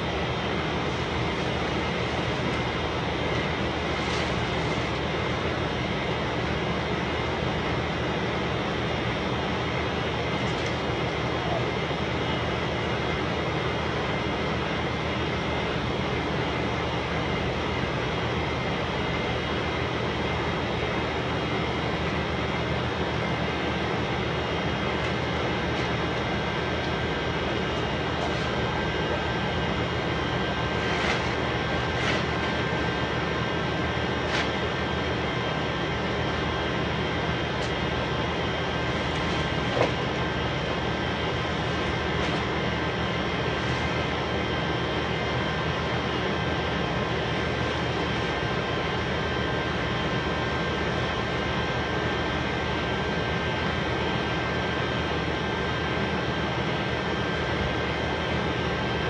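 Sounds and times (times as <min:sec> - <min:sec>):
mechanical drone with high whine: 0:00.0 - 0:59.0.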